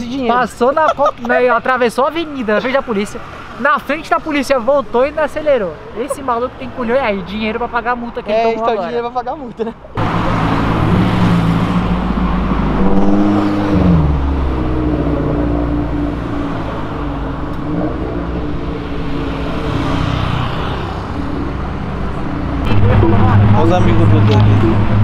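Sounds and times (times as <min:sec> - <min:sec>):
car engines passing: 0:00.0 - 0:25.0
road noise: 0:00.0 - 0:25.0.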